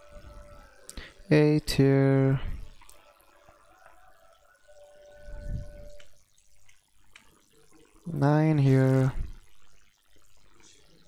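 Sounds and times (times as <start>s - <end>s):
faint steady tone: 0.0s - 11.0s.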